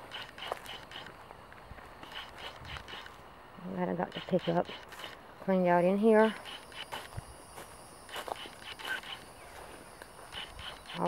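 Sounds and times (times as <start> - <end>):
footsteps on leaves: 6.4 - 11.0.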